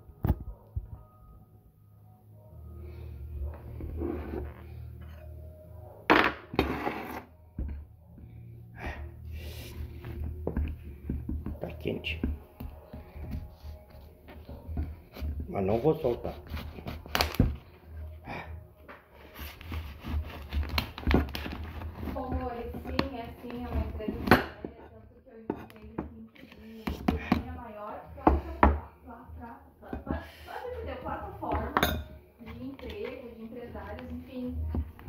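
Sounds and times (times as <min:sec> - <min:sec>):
knife cutting plastic bottle: 0:16.3 - 0:17.6, 0:19.3 - 0:24.7.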